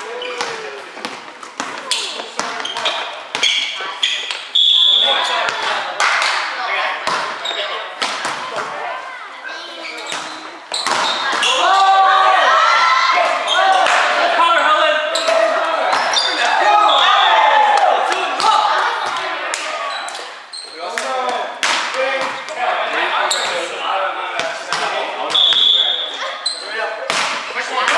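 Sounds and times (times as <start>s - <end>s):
players shouting: 11.2s - 20.0s.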